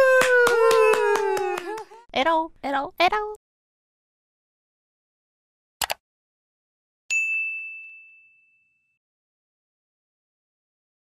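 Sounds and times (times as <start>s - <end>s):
high bell chime ringing: 7.1s - 9.0s.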